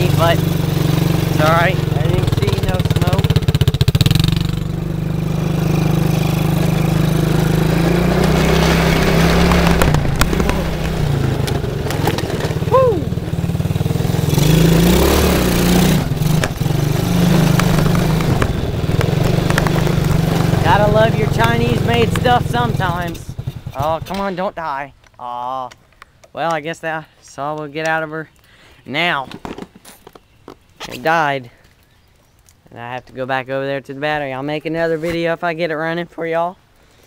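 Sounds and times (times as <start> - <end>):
quad bike engine revving: 0.0 - 24.4.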